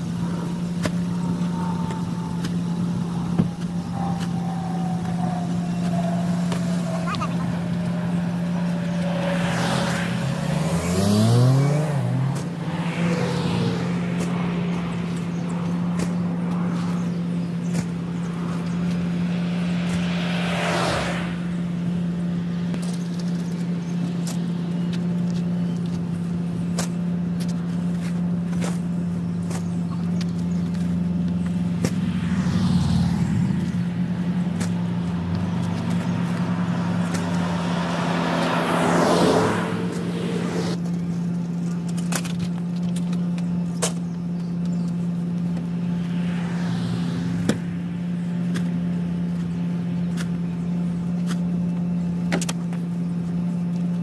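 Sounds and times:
truck engine idling: 0.0 - 9.4
cars passing: 0.0 - 54.0.

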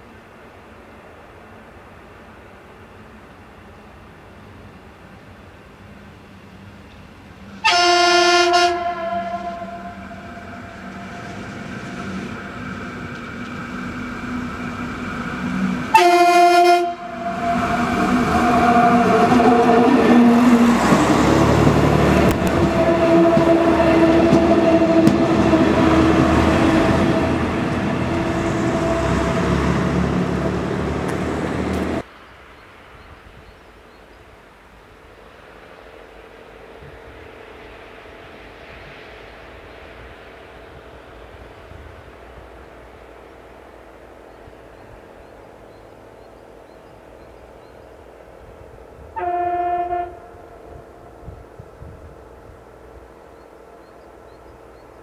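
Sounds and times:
train passing with engine noise: 0.0 - 55.0
train horn blasts: 7.6 - 11.4, 15.7 - 20.8, 22.1 - 30.6, 49.1 - 51.1.

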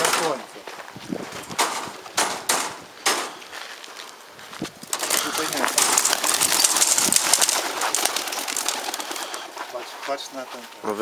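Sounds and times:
pigeon wings clattering: 4.7 - 10.1.

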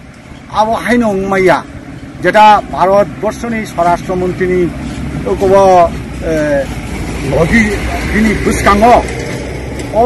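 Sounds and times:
man speaking: 0.5 - 9.1.

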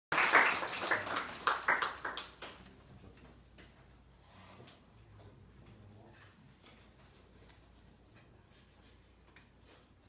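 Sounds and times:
small audience applauding: 0.1 - 2.7.

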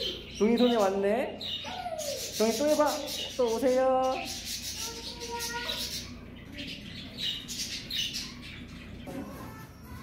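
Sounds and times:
birds squawking and chirping: 0.0 - 10.0.

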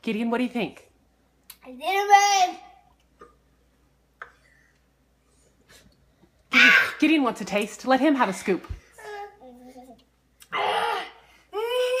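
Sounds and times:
child squealing: 10.5 - 12.0.

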